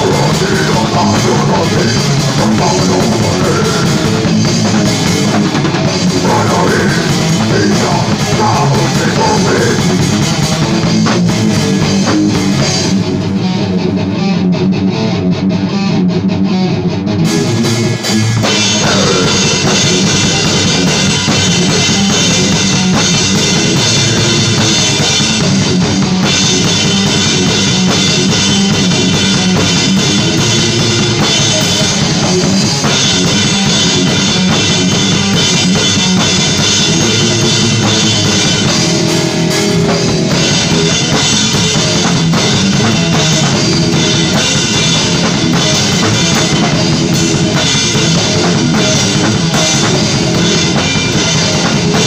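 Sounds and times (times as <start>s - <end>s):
rapid metal drumming: 0.0s - 14.8s, 17.2s - 52.0s
death metal music: 0.0s - 52.0s.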